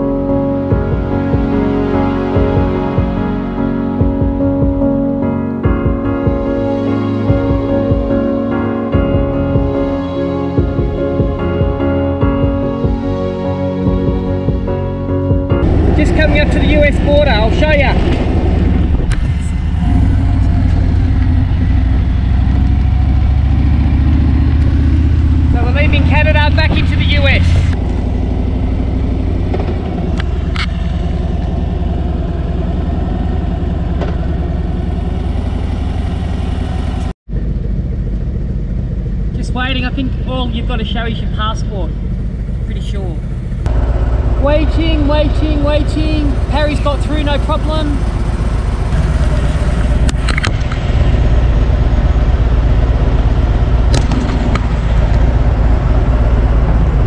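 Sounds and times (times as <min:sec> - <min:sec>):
motorcycle engine rumbling: 0:00.0 - 0:57.0.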